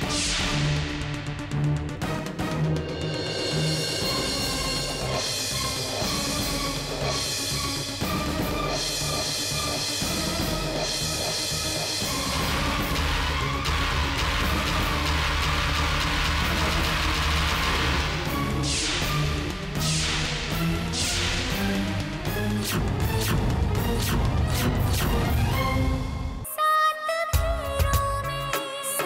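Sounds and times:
dramatic background music: 0.0 - 26.5.

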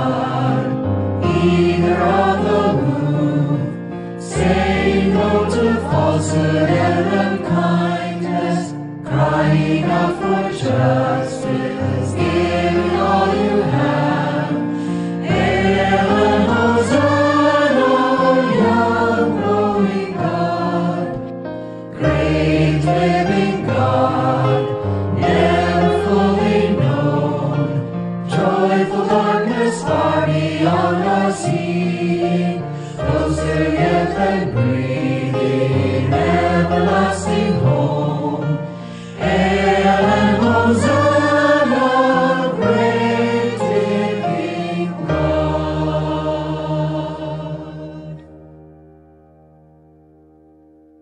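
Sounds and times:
voices singing a hymn: 0.0 - 48.3
instrumental accompaniment: 0.0 - 51.0.

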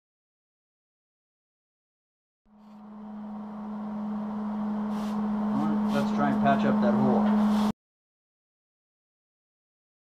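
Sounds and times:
low machine hum: 2.5 - 7.7
light hiss: 4.9 - 6.1.

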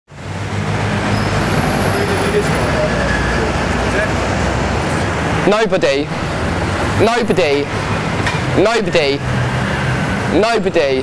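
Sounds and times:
road traffic rumble: 0.1 - 11.0.

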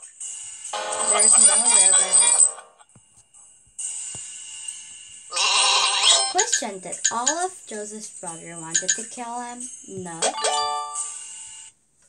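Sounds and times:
bright app chime: 10.2 - 11.2.

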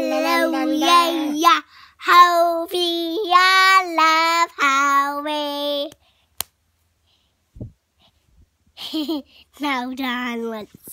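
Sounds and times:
girl singing: 0.0 - 6.0.

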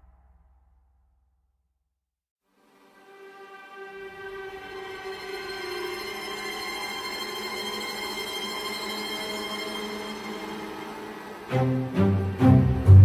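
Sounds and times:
sustained orchestral chord: 2.7 - 13.0.

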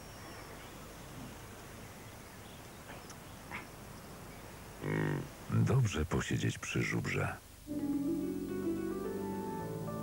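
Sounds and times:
outdoor meadow ambience: 0.0 - 10.0
bison grunt: 4.8 - 5.3.

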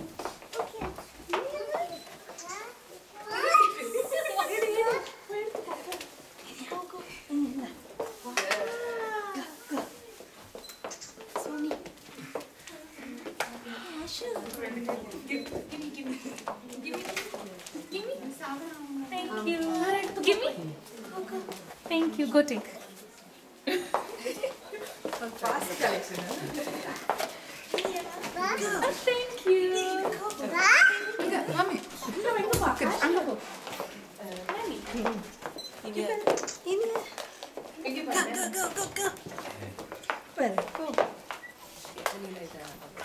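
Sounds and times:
child's wordless call: 2.4 - 4.4.

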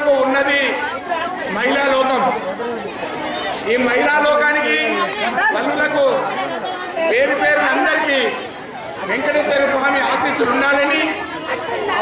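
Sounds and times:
man talking into a microphone: 0.0 - 2.9, 3.6 - 11.2.

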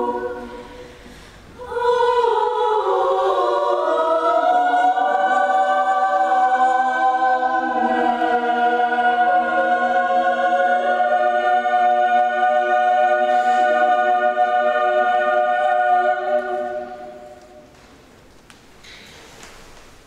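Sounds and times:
women's choir singing a cappella: 0.0 - 17.6.

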